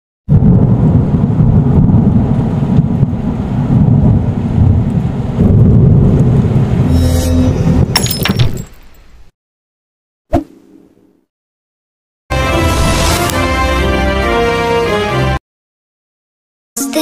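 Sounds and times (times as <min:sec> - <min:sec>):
deep thunder-like rumble: 0:00.3 - 0:07.0
low ringing tone: 0:06.9 - 0:08.1.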